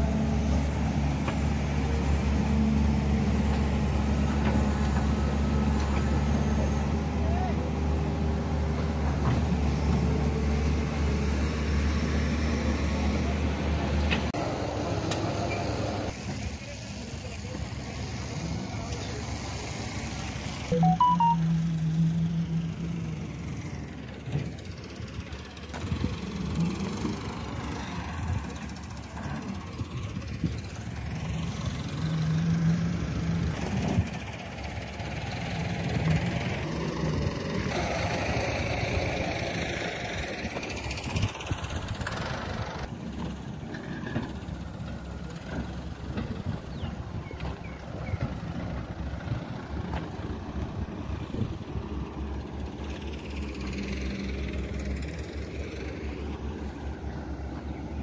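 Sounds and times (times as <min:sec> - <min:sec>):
outdoor site noise: 0:00.0 - 0:58.0.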